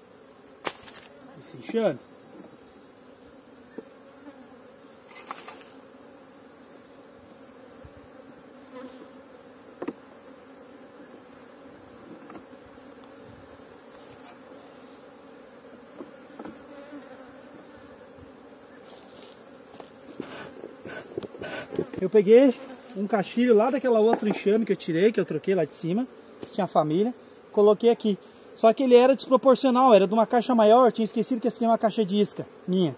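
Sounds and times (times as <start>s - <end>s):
honey bees buzzing: 0.0s - 32.9s.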